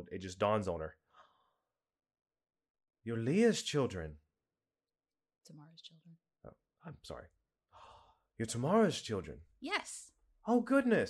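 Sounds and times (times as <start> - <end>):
faint breath: 1.0 - 1.7, 7.7 - 8.3.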